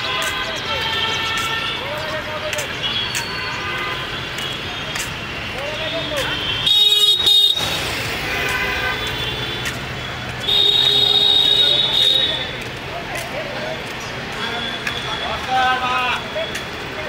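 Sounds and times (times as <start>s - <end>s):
distant horns: 0.0s - 12.7s
city traffic: 0.0s - 17.0s
loud vehicle horn blast: 6.3s - 9.6s, 10.4s - 12.4s.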